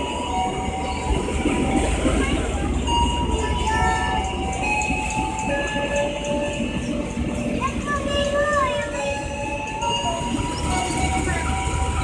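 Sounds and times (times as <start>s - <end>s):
train coaches rumbling past: 0.0s - 12.0s.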